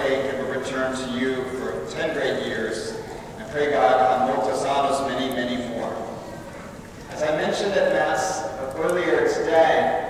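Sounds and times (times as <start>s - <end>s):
man speaking over a microphone: 0.0s - 6.2s, 7.1s - 10.0s.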